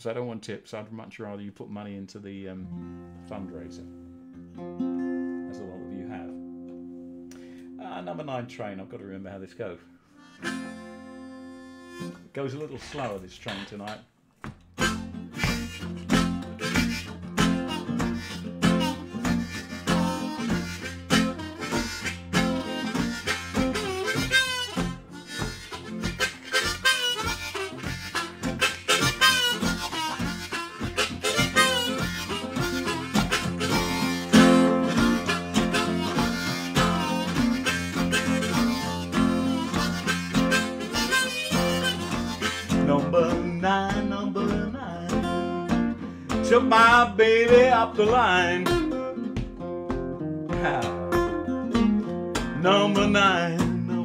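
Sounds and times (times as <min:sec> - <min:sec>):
blues harmonica with bending notes: 0:02.7 - 0:12.3, 0:14.8 - 0:54.0
strummed guitar rhythm: 0:02.7 - 0:12.3, 0:13.0 - 0:54.0.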